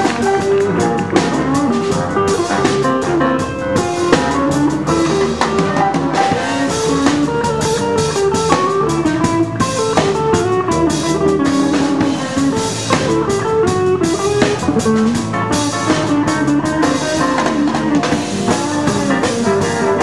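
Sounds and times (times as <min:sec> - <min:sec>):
drum kit: 0:00.0 - 0:20.0
electric guitar jazz solo: 0:00.0 - 0:20.0.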